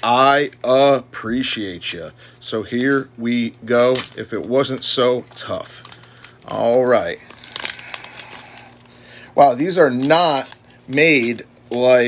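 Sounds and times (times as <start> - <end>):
plastic wrapper crinkling: 2.3 - 12.0.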